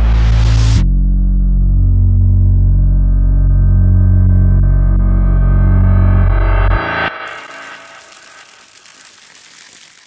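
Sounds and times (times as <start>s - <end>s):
music: 0.0s - 10.0s
crackling rattling hiss: 7.3s - 10.0s.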